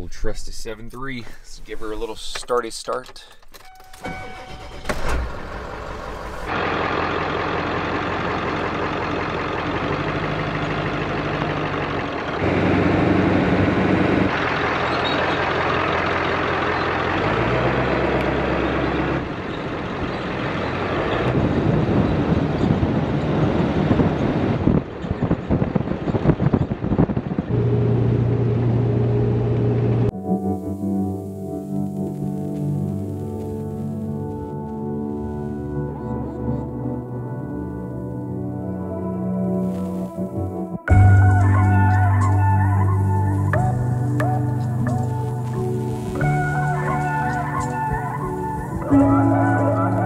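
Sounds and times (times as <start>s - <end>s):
road noise: 0.0s - 50.0s
diesel pickup engine running: 3.9s - 30.1s.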